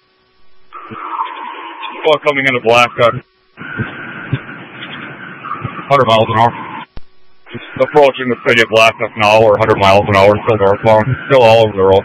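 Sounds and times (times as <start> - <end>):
tinny radio road and engine noise: 0.8 - 12.0
person speaking over radio: 2.0 - 3.2, 5.9 - 6.6, 7.5 - 12.0.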